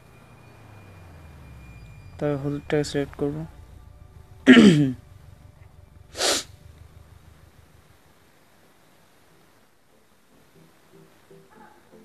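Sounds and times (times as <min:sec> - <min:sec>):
faint steady hiss: 0:00.0 - 0:12.0
sharp breath burst: 0:06.1 - 0:06.6.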